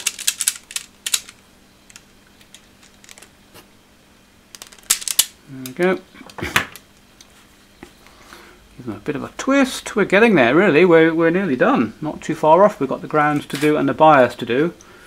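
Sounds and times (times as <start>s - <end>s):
wire strippers clicking: 0.0s - 3.3s.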